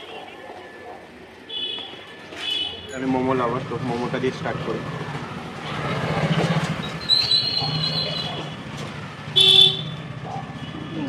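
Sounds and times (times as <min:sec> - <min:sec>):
steady high vehicle horn: 0:09.4 - 0:09.9.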